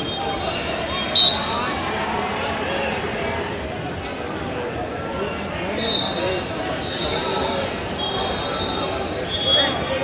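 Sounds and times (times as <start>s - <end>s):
hubbub of voices: 0.0s - 10.0s
referee's whistle blast: 1.0s - 1.7s.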